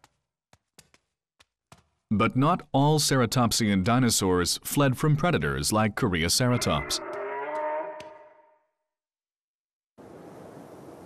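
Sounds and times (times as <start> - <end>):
creature bellowing: 6.6 - 8.4.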